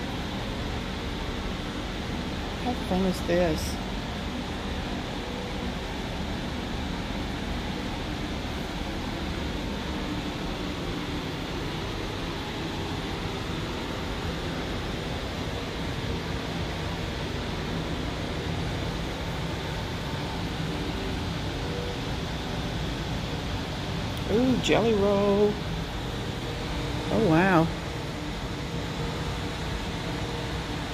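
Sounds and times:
room tone hiss and hum: 0:00.0 - 0:30.9.

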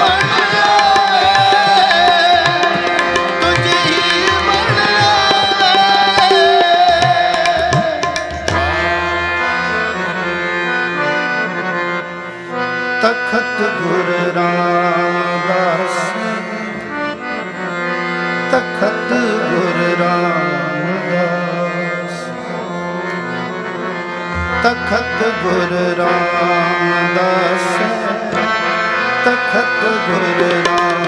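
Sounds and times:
tabla strokes: 0:00.0 - 0:08.9
person singing ornamented melody: 0:00.0 - 0:10.7, 0:24.3 - 0:31.0
harmonium chords: 0:00.0 - 0:31.0.

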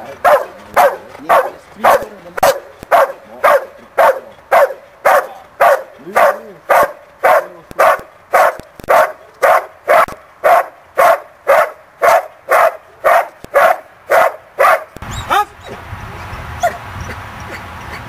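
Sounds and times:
dog barking: 0:00.2 - 0:15.0.

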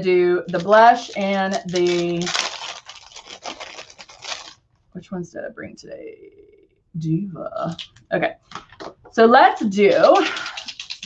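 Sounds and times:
makeup containers rustling and clattering: 0:07.8 - 0:09.2, 0:09.8 - 0:11.0.

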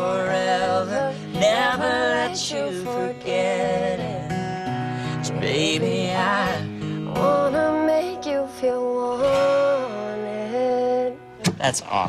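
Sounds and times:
acoustic guitar: 0:00.0 - 0:12.0
country song singing: 0:00.0 - 0:12.0.

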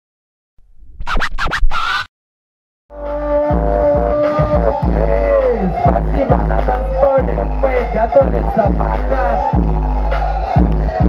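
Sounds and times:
turntable scratching: 0:01.0 - 0:02.1.

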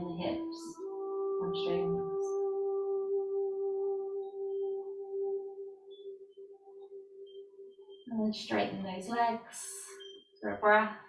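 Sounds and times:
ambient drone music: 0:00.0 - 0:10.5.

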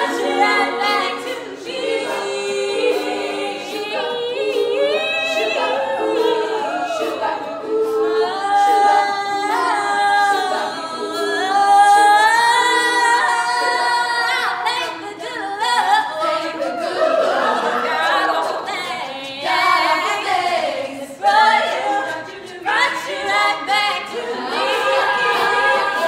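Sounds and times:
women singing a cappella: 0:00.0 - 0:26.0.

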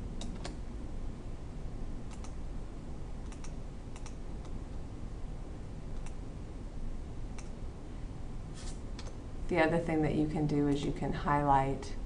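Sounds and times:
faint room noise: 0:00.0 - 0:12.0
mouse and keyboard clicks: 0:03.2 - 0:04.6.

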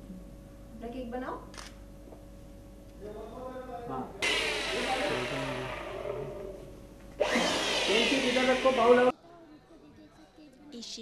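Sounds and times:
faint music: 0:02.5 - 0:06.9, 0:07.9 - 0:11.0.

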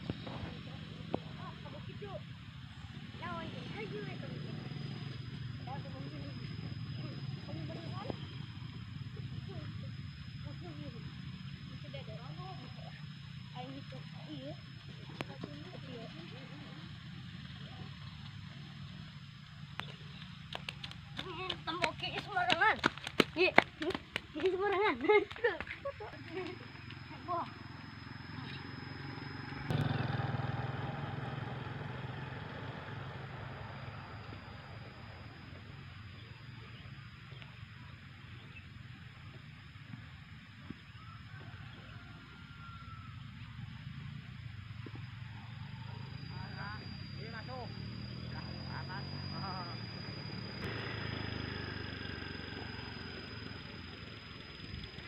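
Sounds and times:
motorcycle engine droning: 0:00.0 - 0:55.0.

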